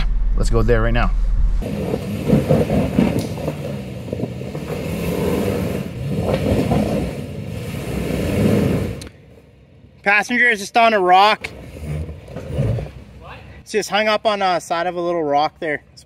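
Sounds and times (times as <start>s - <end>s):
truck engine at low revs: 0.0s - 10.0s, 11.4s - 13.2s.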